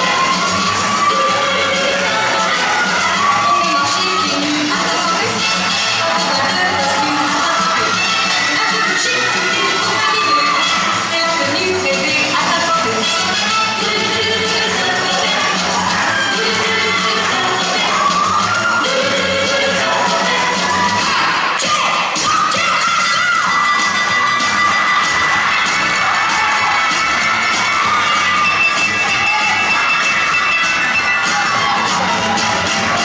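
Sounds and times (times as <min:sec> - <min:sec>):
shouted whoops: 0:00.0 - 0:04.4, 0:15.2 - 0:33.0
crowd cheering and shouting: 0:00.0 - 0:33.0
fast dance music: 0:00.0 - 0:33.0.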